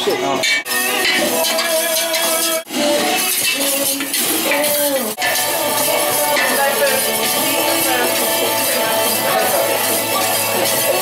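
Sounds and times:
background music with held notes: 0.0 - 11.0
whisk clinking against metal pot: 3.2 - 11.0.

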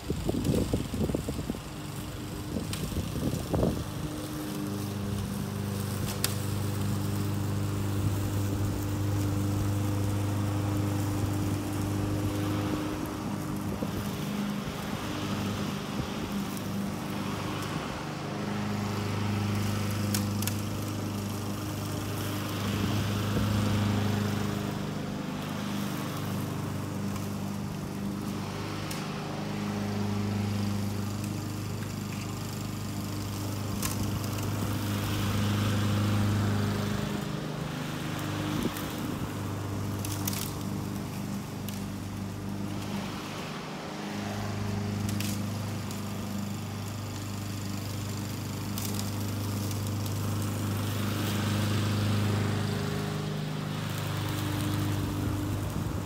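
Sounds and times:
lawn mower engine cutting grass: 0.0 - 56.0.

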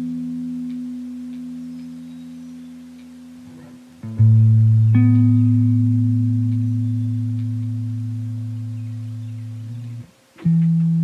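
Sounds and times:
plucked guitar notes: 0.0 - 11.0.

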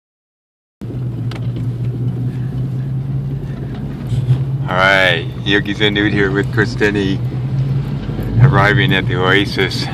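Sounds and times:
vehicle engine and road noise: 0.8 - 9.9.

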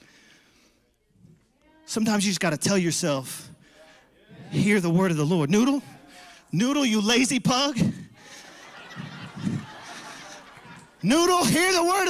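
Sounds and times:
congregation laughing softly: 5.7 - 12.0.

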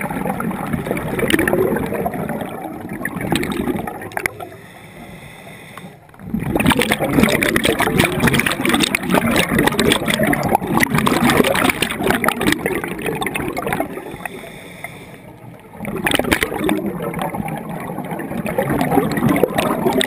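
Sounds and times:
exhaled bubbles gurgling: 0.0 - 20.0
scuba regulator breathing underwater: 4.2 - 6.6, 13.8 - 15.4.

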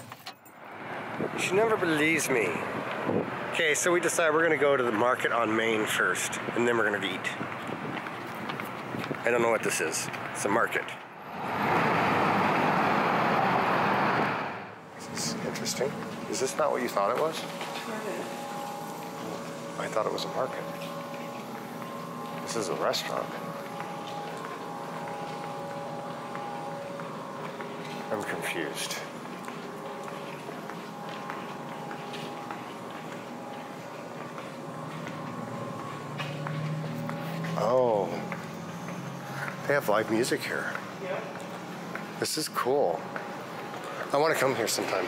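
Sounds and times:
vehicle passing close by: 11.2 - 16.5.

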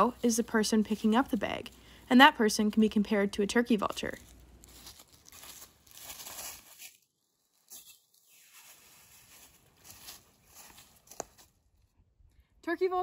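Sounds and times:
plastic bag crinkling: 3.9 - 11.1
rustling in dry leaves: 3.9 - 11.8.

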